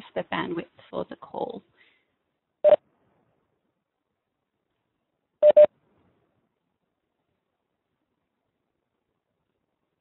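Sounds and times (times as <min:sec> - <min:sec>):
electronic notification beeps: 0:05.4 - 0:05.7.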